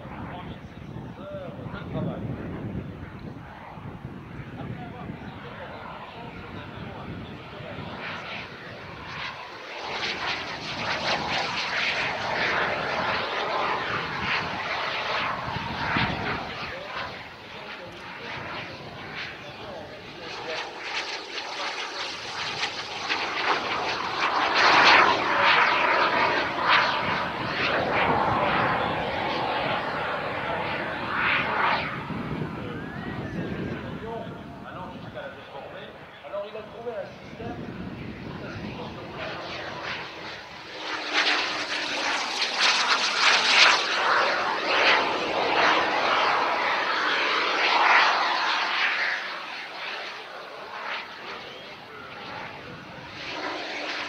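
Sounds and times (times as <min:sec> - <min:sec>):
model jet engines roaring: 0:00.0 - 0:54.0.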